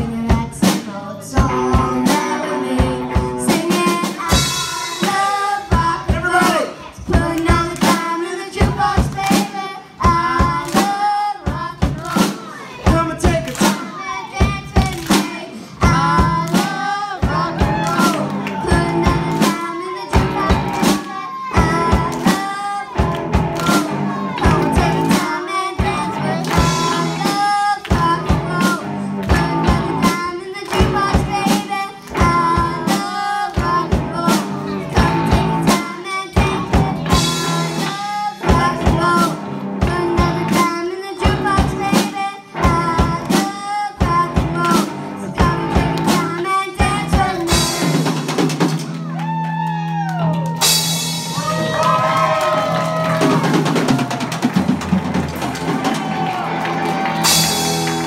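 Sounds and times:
electric bass: 0.0s - 7.9s, 14.4s - 58.0s
girl singing into microphone: 0.0s - 48.3s
drum kit: 0.0s - 58.0s
electric guitar: 12.8s - 58.0s.

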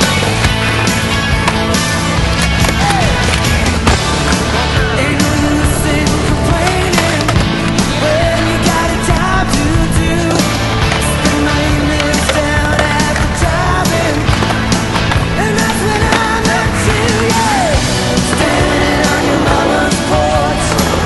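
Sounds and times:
rock music: 0.0s - 21.0s
skateboard clacking on landing: 0.0s - 21.0s
skateboard wheels rolling on asphalt: 0.0s - 21.0s.

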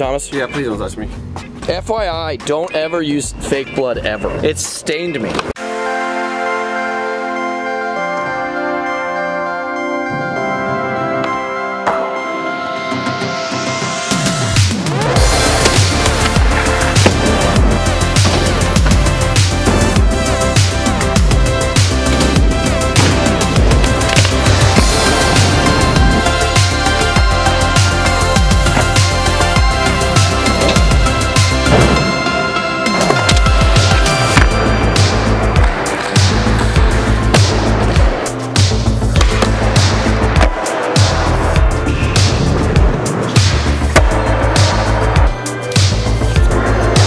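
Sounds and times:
electronic music with heavy beat: 13.0s - 47.0s
sliding deep bass notes: 14.4s - 45.4s
skateboard wheels rolling on concrete: 15.0s - 45.4s.

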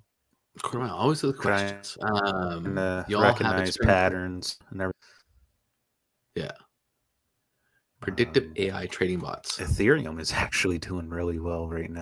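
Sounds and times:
man saying a word: 1.4s - 4.4s, 8.0s - 10.0s.

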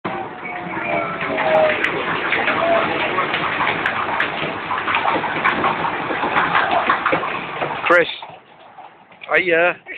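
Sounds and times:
miniature train rumbling in a tunnel: 0.1s - 9.9s
voices: 0.1s - 9.9s.

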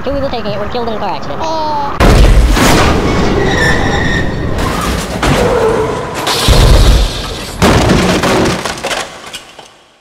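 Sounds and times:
heavy car crash impact: 2.0s - 3.6s, 4.6s - 9.8s
glass breaking: 6.1s - 9.8s.

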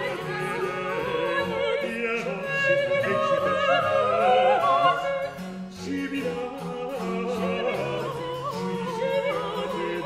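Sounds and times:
high voice singing with vibrato: 0.0s - 10.0s.

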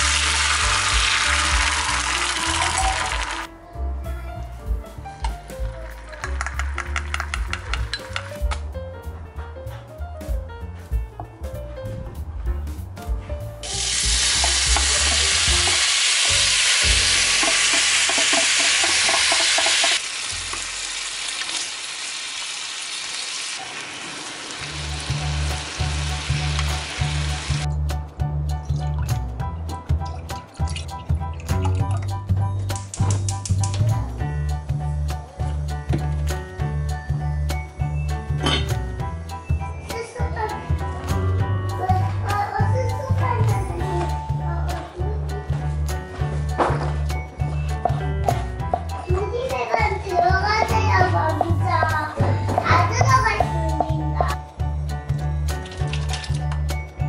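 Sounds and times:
meat sizzling in a pan: 0.0s - 3.4s, 13.6s - 27.6s
background music with a beat: 4.5s - 15.7s, 27.6s - 57.0s.

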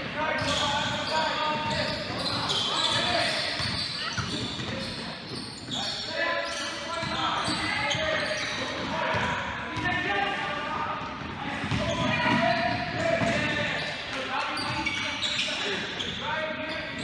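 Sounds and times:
basketballs bouncing on gym floor: 0.0s - 5.9s, 7.0s - 17.0s.

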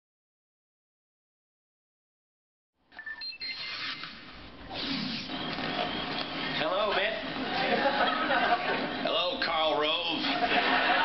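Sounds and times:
television voices and studio sound: 3.2s - 11.0s.

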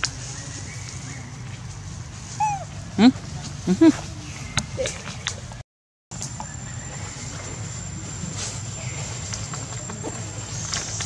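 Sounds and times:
low background hum: 0.0s - 5.6s, 6.2s - 11.0s
monkey call falling in pitch: 2.4s - 2.7s.

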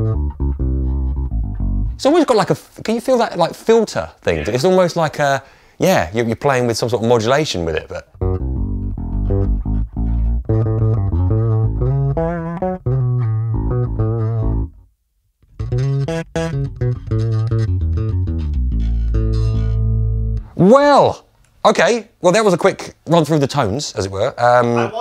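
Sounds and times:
electric bass plucked notes: 0.0s - 2.1s, 8.1s - 20.6s.

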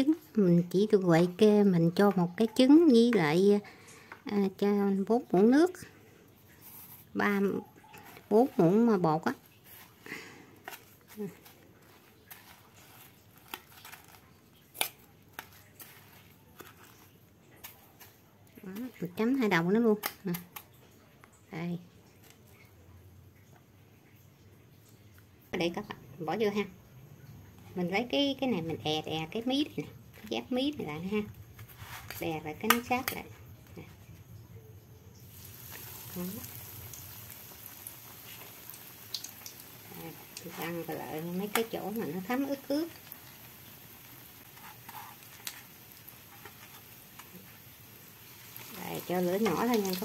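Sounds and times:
breadcrumbs rustling: 6.4s - 20.7s, 27.6s - 50.0s
oil sizzling in a wok: 35.1s - 50.0s.

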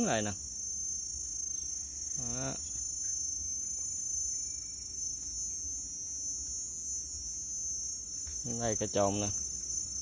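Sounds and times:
insects chorus: 0.0s - 10.0s.

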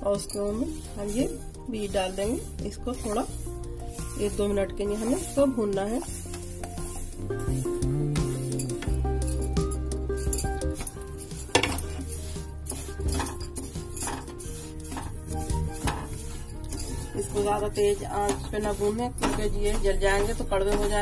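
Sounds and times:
background music with bass line: 0.0s - 21.0s
spatula stirring seeds in pan: 0.0s - 21.0s.

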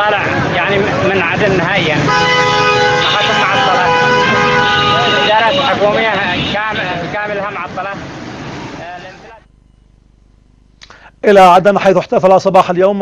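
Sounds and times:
man talking: 0.0s - 2.1s, 3.0s - 4.3s, 4.9s - 8.0s, 8.8s - 9.5s, 10.8s - 13.0s
street and traffic noise: 0.0s - 13.0s.

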